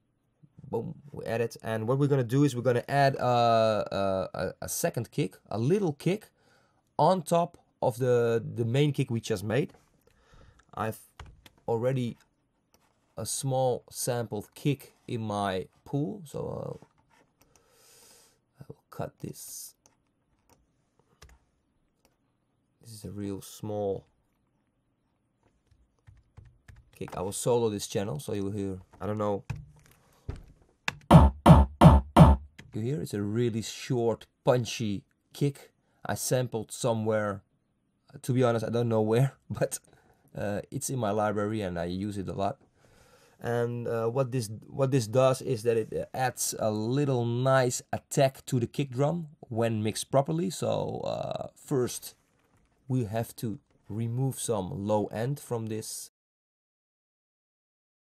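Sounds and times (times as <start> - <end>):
electronic kick drum hits: 31.1 - 32.5.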